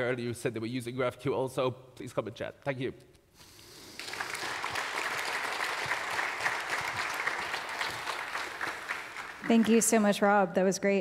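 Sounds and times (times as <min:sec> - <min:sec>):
audience applauding: 0:03.8 - 0:10.2.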